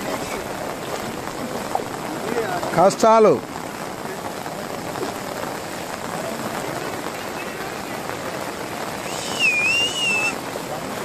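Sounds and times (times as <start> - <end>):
floodwater running over ground: 0.0 - 11.0
heavy rain hissing: 0.0 - 11.0.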